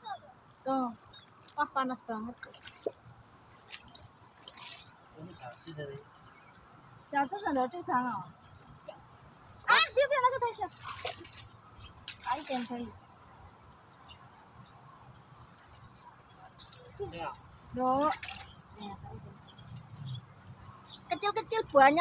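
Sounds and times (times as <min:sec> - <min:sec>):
people's voices: 0:21.0 - 0:22.0.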